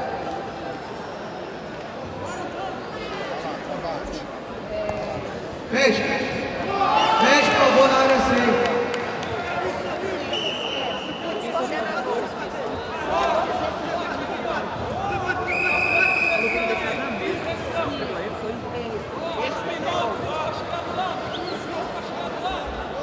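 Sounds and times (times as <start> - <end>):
voices calling out in a hall: 0.0 - 23.0.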